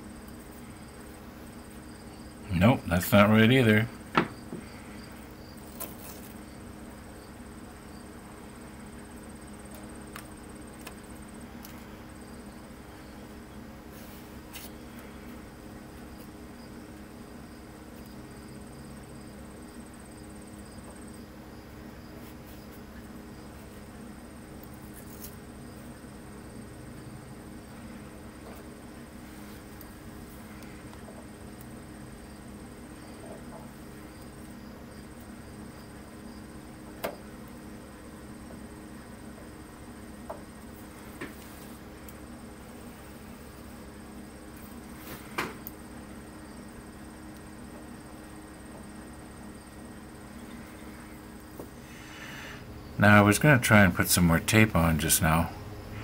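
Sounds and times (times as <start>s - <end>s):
low electrical hum: 0.0s - 56.0s.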